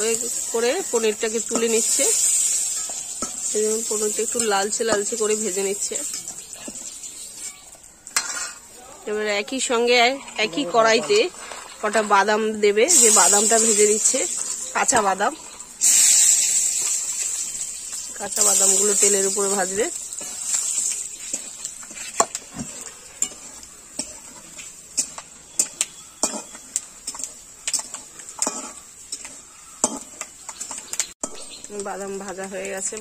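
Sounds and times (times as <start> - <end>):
spatula scraping metal pan: 0.0 - 8.7, 13.0 - 31.5
oil sizzling: 0.0 - 33.0
metal spatula clattering on bowl: 20.2 - 33.0.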